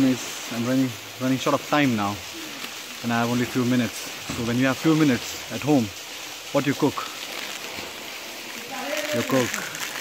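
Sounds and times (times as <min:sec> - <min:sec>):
waterfall rushing: 0:00.0 - 0:10.0
man's voice: 0:08.7 - 0:09.8.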